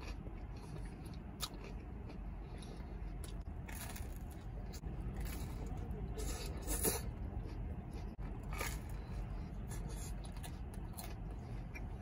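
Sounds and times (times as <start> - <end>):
chewing crispy crust: 0.0 - 12.0.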